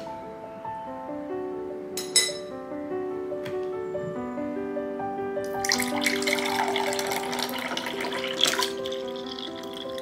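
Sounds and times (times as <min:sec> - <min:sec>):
instrumental background music: 0:00.0 - 0:10.0
glass clinks: 0:02.0 - 0:02.5.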